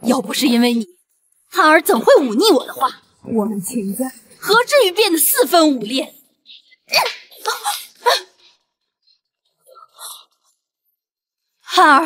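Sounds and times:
woman's sharp wordless cries: 6.9 - 8.4.

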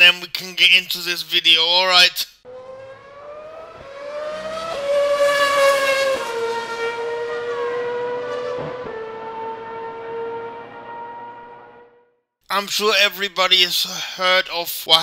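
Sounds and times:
racing car engine high note: 2.5 - 12.2.

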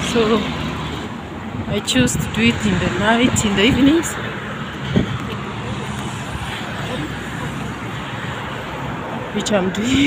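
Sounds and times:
road traffic hiss: 0.0 - 10.0.

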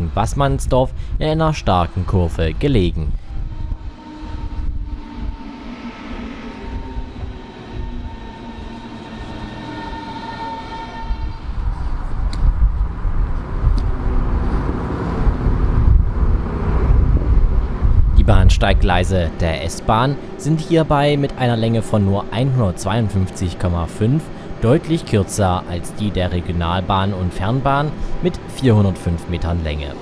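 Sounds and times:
train rolling rumble: 0.0 - 30.0
train traction whine: 0.0 - 30.0.

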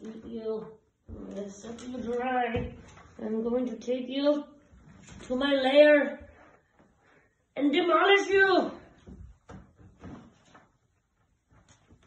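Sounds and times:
scuffling on hardwood floor: 0.0 - 3.4.

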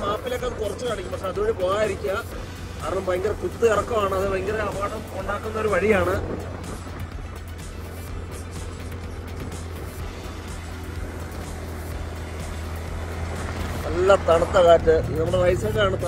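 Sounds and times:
road noise: 0.0 - 16.0
vehicle engine drone: 0.0 - 16.0.

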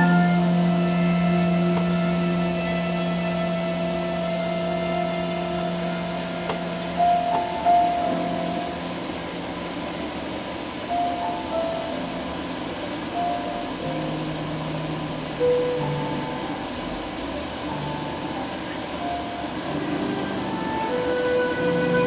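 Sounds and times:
slow held keyboard notes: 0.0 - 22.0.

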